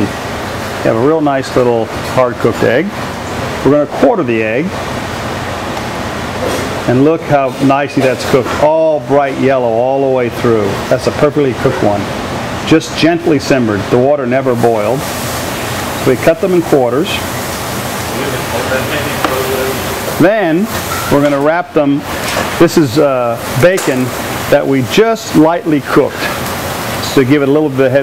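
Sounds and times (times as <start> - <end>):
kitchen ventilation rushing: 0.0 - 28.0
air handling hiss: 14.8 - 28.0.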